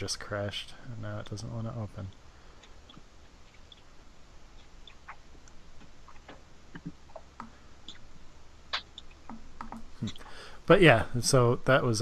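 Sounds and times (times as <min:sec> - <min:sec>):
low steady hum: 0:00.0 - 0:12.0
computer clicks: 0:08.8 - 0:10.2.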